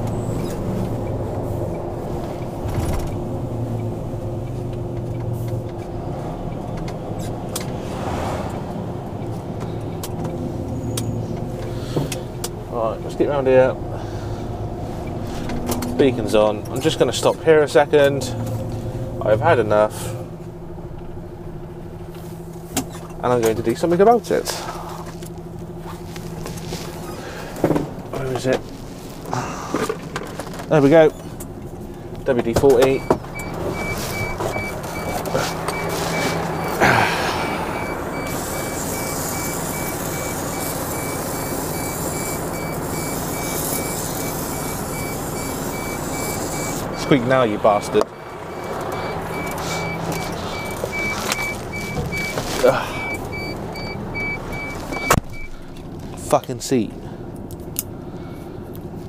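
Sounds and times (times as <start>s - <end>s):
seat squeaking: 0.0s - 3.4s, 22.6s - 23.2s, 24.7s - 31.6s, 32.4s - 47.4s, 48.1s - 56.2s
diesel engine idling: 0.0s - 59.0s
man grunting: 36.8s - 37.8s, 52.6s - 53.0s
warning beeper pulsing: 37.7s - 47.3s, 48.2s - 55.5s.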